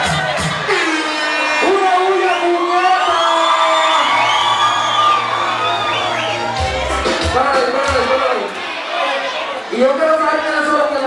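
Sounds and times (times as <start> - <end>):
crowd cheering: 0.0 - 11.0
reggaeton over sound system: 0.0 - 11.0.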